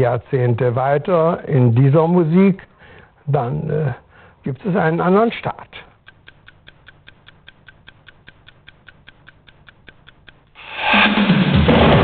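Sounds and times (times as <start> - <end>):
clock ticking: 6.0 - 10.6.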